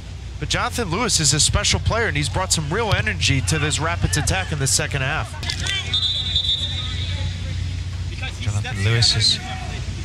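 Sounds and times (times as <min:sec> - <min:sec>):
low stadium rumble: 0:00.0 - 0:10.0
referee whistle blast: 0:05.7 - 0:07.2.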